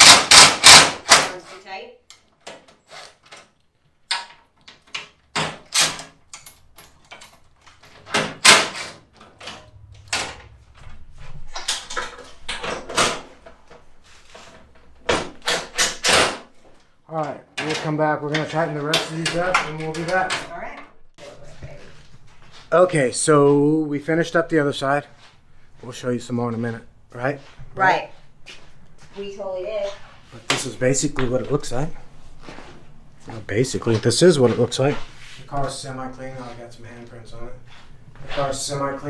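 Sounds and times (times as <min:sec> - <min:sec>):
impact driver running: 0:00.0 - 0:01.2.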